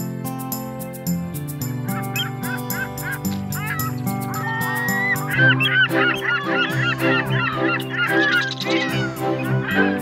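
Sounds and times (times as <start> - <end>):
music with steady beat: 0.0 - 6.0
birds calling: 1.1 - 10.0.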